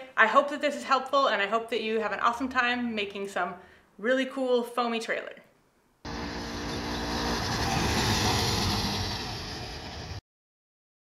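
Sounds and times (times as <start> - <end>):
scooter driving past: 6.1 - 10.2.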